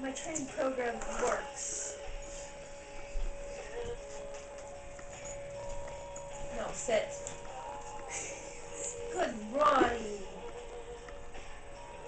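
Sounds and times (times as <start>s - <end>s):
woman speaking: 0.0s - 1.8s, 6.5s - 7.3s, 8.9s - 10.4s
steady background tone: 0.2s - 12.0s.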